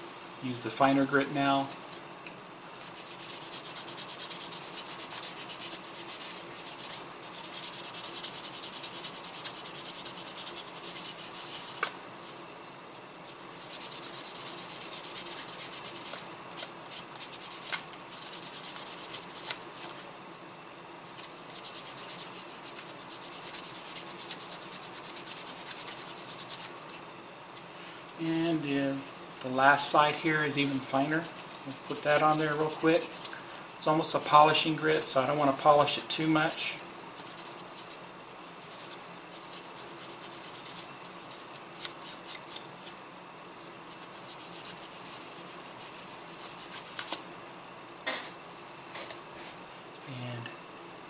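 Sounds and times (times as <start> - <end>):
sanding stick scratching plastic: 2.6 - 12.4, 13.2 - 20.0, 21.2 - 27.0, 27.6 - 43.0, 43.7 - 47.3.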